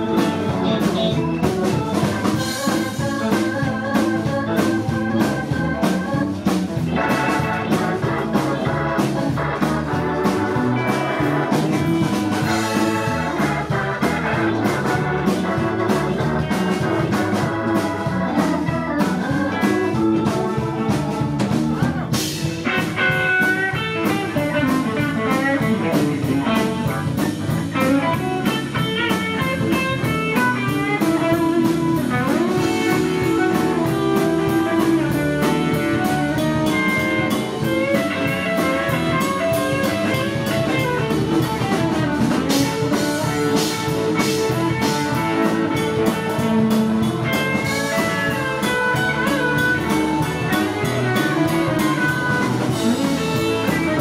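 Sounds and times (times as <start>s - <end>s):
drum kit: 0.0s - 54.0s
electric bass: 0.0s - 54.0s
electric guitar lead lines: 0.0s - 54.0s.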